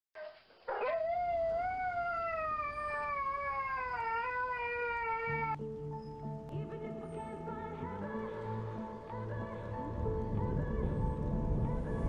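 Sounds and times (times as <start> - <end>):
husky howling: 0.7 - 5.6
soft music: 1.5 - 12.0.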